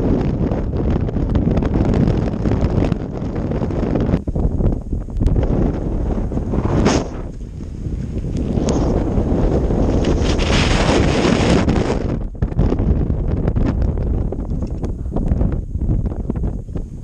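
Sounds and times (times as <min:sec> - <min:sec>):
wind buffeting microphone: 0:00.0 - 0:17.0
short clicks and crackles: 0:14.4 - 0:15.0.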